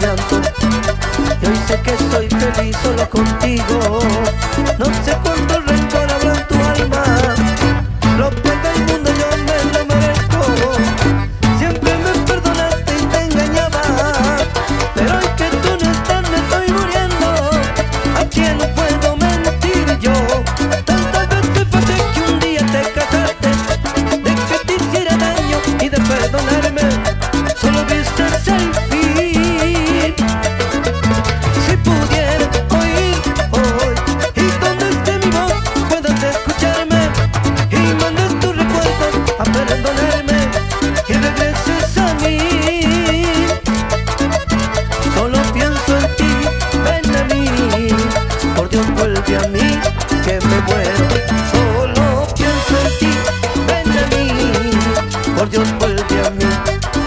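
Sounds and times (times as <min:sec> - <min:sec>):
cumbia band music: 0:00.0 - 0:57.0.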